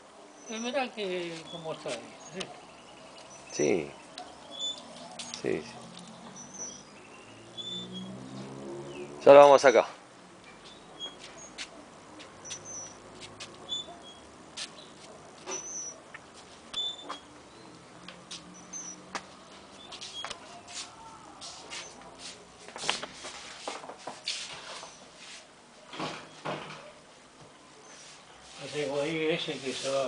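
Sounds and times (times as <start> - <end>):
small birds chirping: 0.3 - 9.7, 10.4 - 22.0
soft footsteps: 10.4 - 13.7, 14.5 - 17.3, 18.0 - 25.5.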